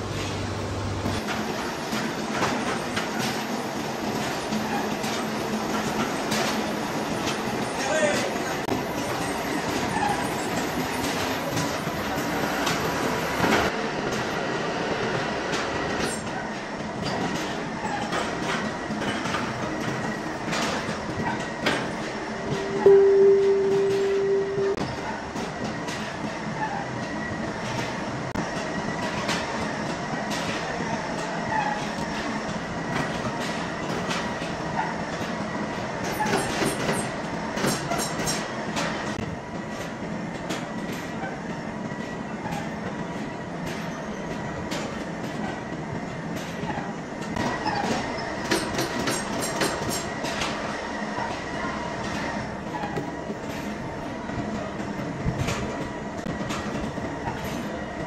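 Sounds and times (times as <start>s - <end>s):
machinery whine: 22.0s - 25.3s.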